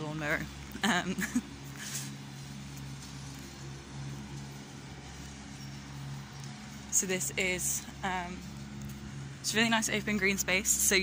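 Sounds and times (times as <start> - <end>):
lawnmower engine running: 0.0 - 11.0.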